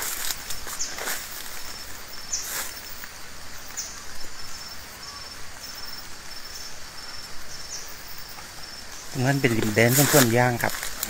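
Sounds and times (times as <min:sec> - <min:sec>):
brush rustling: 0:00.0 - 0:03.2, 0:08.4 - 0:11.0
insects chirping pulsing trill: 0:00.0 - 0:11.0.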